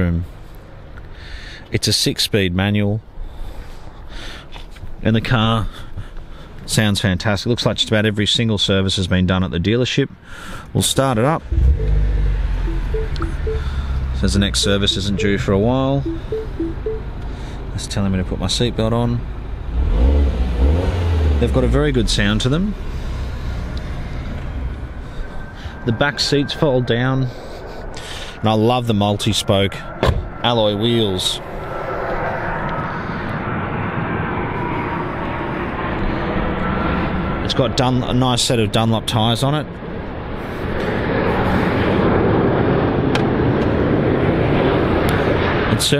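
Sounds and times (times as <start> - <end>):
engine roar: 11.4 - 12.9, 19.5 - 26.8
two-tone dashboard warning chime: 11.6 - 13.9, 14.9 - 17.1.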